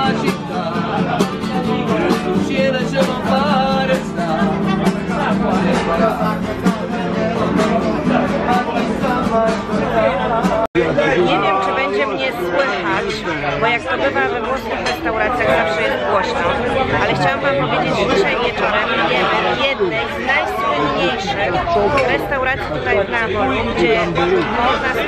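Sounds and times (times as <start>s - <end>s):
man singing: 0.0s - 12.2s
acoustic guitar strumming: 0.0s - 13.1s
crowd chatter: 0.0s - 25.0s.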